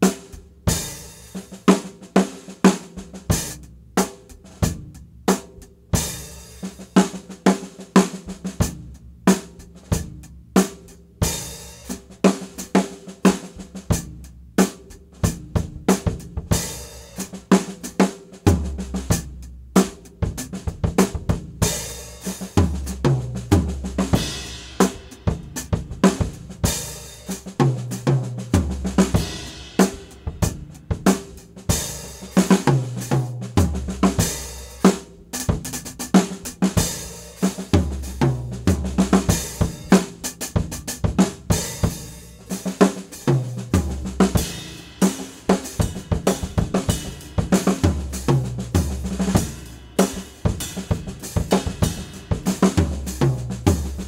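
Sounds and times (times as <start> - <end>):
acoustic drum kit playing: 0.0 - 54.0.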